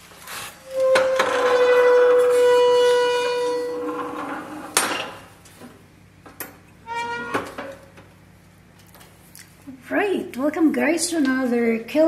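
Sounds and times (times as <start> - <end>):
kiln lid hinge squealing: 0.6 - 5.2, 6.8 - 7.9.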